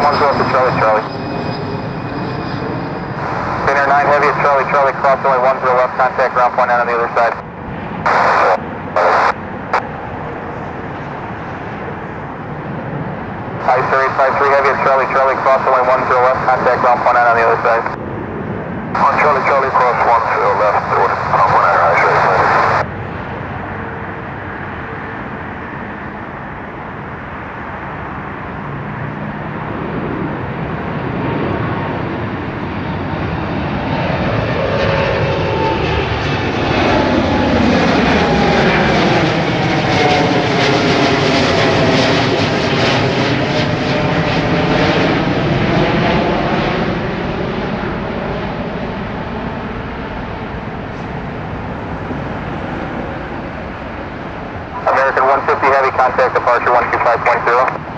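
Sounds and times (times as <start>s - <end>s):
jet passing overhead: 0.0s - 57.9s.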